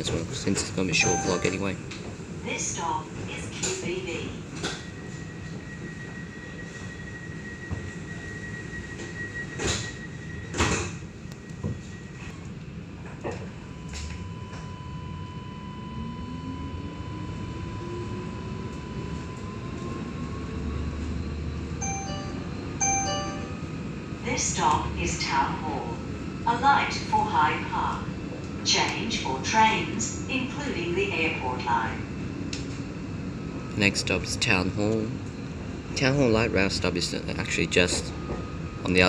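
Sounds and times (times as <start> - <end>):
short electronic chime: 1.0 - 1.6, 21.8 - 23.6
steady high door tone: 1.0 - 1.7, 21.8 - 23.9.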